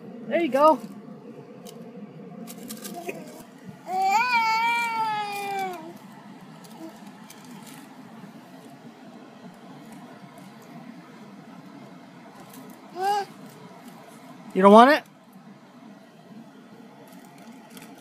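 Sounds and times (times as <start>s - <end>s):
paper bag crinkling: 2.4s - 8.8s, 17.0s - 18.0s
toddler vocalizing: 3.0s - 6.0s, 12.9s - 13.4s.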